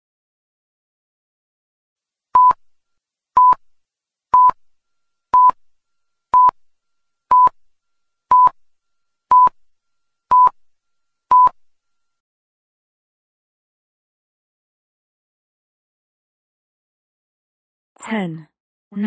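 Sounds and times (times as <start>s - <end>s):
electronic timer beeps: 2.4s - 2.6s, 3.4s - 3.6s, 4.3s - 4.6s, 5.3s - 5.6s, 6.3s - 6.6s, 7.3s - 7.6s, 8.3s - 8.6s, 9.3s - 9.6s, 10.2s - 10.6s, 11.2s - 11.7s.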